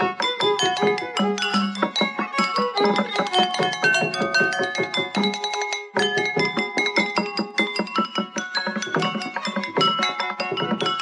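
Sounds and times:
porcelain bowls struck ringing: 0.0 - 11.0.

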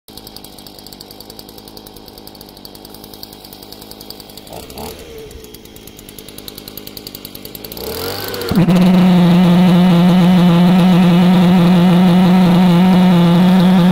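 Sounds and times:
leaf blower engine running: 0.1 - 13.9.

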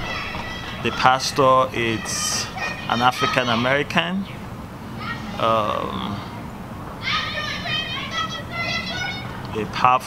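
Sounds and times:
children calling out: 0.0 - 9.8.

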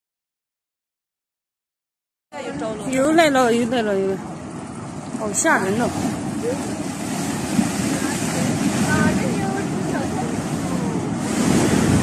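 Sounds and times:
debris flow rushing rumble: 3.1 - 12.0.

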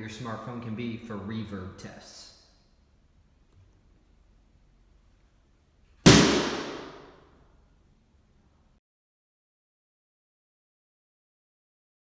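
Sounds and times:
sharp bang with room echo: 6.0 - 7.4.

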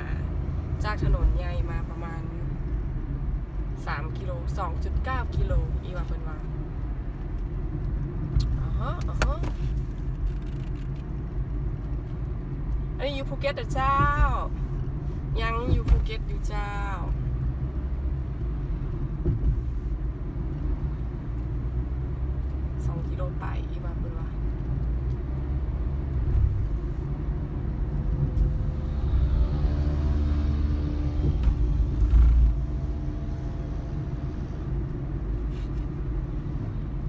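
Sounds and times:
car engine and tyre noise: 0.0 - 37.0
low bump: 27.9 - 34.9.

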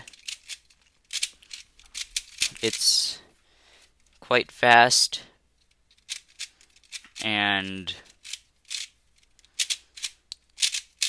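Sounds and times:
puzzle cube clicky plastic turns: 0.0 - 2.9, 5.6 - 11.0.

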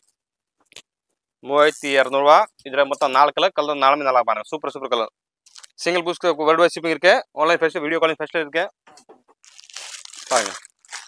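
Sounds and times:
fabric rustling: 9.4 - 11.0.

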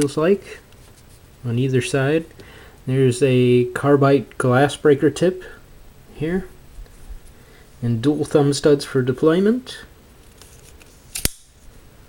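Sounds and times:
folding knife blade locking click: 11.1 - 11.5.

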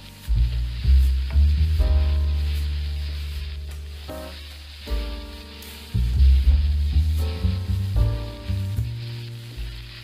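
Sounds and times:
background music with bass: 0.0 - 10.0
rice sizzling in a wok: 0.0 - 10.0.

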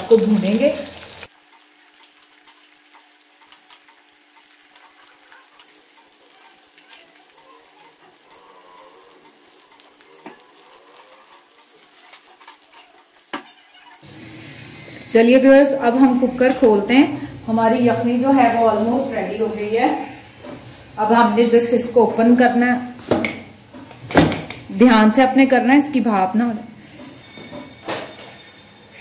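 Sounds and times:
onions sizzling in oil: 0.0 - 29.0.

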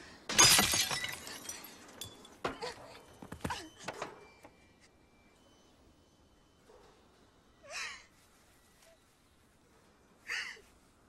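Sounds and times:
glass window shattering: 0.3 - 2.1.

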